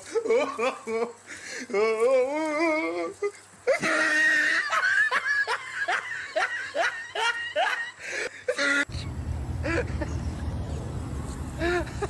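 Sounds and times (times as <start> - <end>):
person laughing in short bursts: 2.6 - 9.0, 9.6 - 10.2, 11.6 - 12.0.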